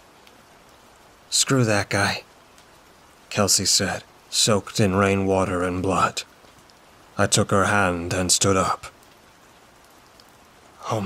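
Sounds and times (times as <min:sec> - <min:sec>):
faint rain falling: 0:00.0 - 0:11.0
man's voice: 0:01.3 - 0:02.2, 0:03.3 - 0:06.2, 0:07.2 - 0:08.9, 0:10.8 - 0:11.0.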